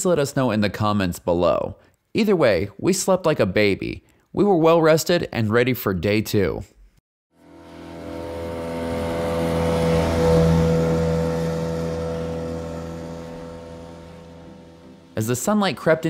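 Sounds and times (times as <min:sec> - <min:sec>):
motor hum: 0:07.4 - 0:15.2.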